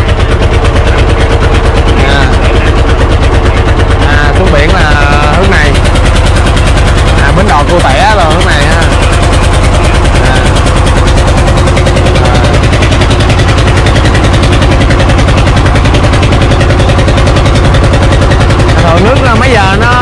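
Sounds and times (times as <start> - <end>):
boat engine chugging: 0.0 - 20.0.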